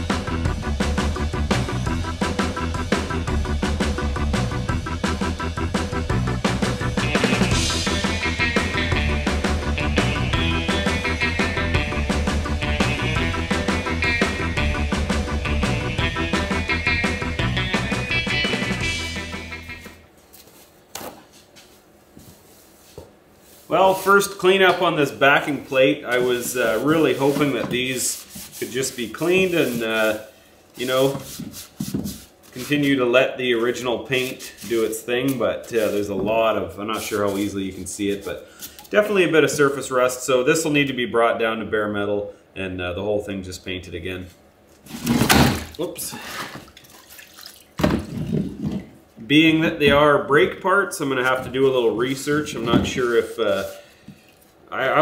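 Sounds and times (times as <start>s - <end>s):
surf rock guitar music: 0.0s - 20.1s
liquid sloshing in tub: 44.8s - 49.0s
liquid dripping: 46.6s - 47.8s.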